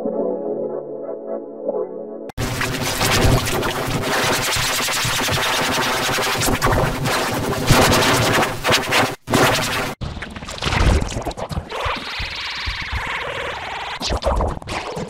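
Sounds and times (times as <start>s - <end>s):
distorted harsh music: 2.4s - 10.0s.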